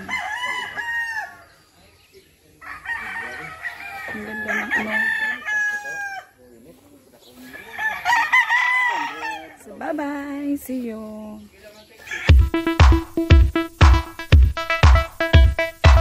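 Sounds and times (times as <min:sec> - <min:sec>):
roosters crowing: 0:00.0 - 0:01.8, 0:02.5 - 0:06.4, 0:07.3 - 0:09.8, 0:12.0 - 0:12.6.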